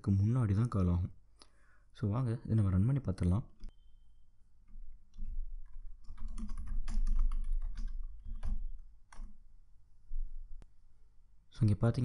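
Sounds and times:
typing on a computer keyboard: 4.7 - 9.4.

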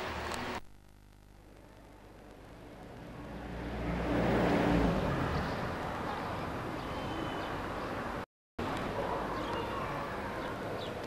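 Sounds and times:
vehicle passing close by: 2.9 - 8.2.

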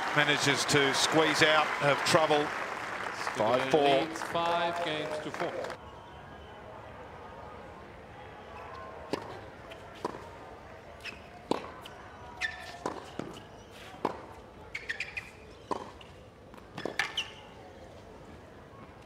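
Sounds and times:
faint crowd murmur: 5.6 - 14.8, 15.5 - 19.0
shoe squeaks: 11.0 - 17.8
racket striking tennis ball: 11.5 - 13.4.

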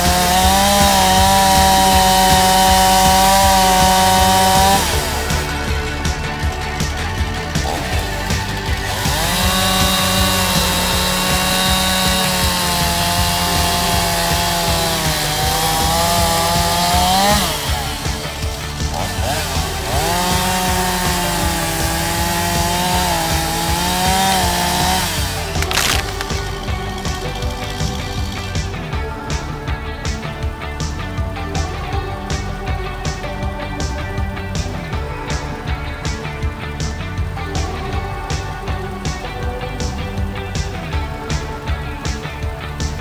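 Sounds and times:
chainsaw cutting wood: 0.0 - 29.0
background music: 0.0 - 43.0.

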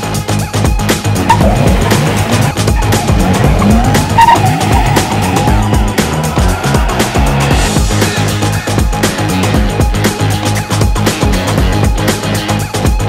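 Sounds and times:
background music with steady beat: 0.0 - 13.0
tyres squealing: 1.2 - 6.8.

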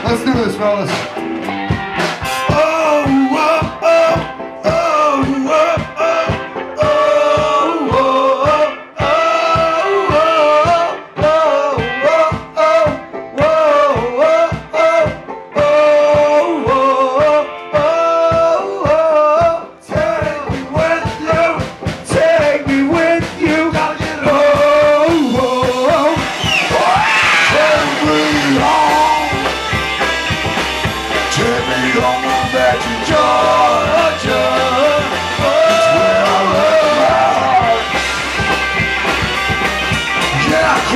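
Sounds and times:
drumming: 0.0 - 40.9
live band playing uptempo song: 0.0 - 40.9.

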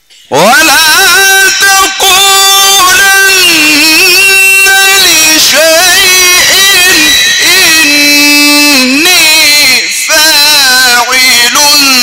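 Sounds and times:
short breath: 0.0 - 0.3
man reciting melodically over loudspeakers: 0.0 - 12.0.

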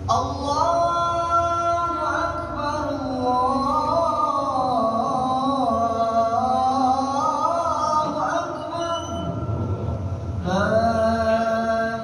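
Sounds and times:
amplified call to prayer: 0.0 - 12.0
low rumbling room noise: 0.0 - 12.0.

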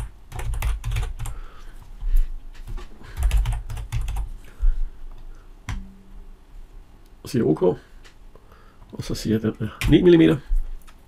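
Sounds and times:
typing on computer keyboard: 0.0 - 1.4, 3.1 - 4.3.

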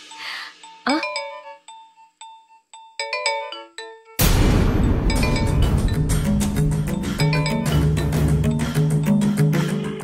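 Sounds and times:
phone ringtone melody: 0.0 - 4.2, 4.8 - 9.2.

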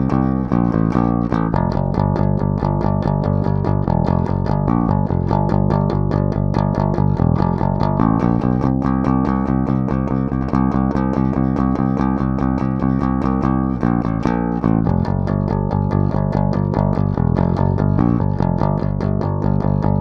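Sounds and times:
electric bass guitar picked notes: 0.0 - 20.0.

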